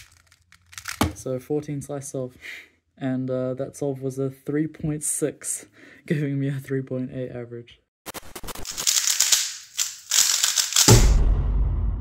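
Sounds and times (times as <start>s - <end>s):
rapid crackling clicks: 8.1s - 11.2s
deep rumbling boom: 11.1s - 12.0s.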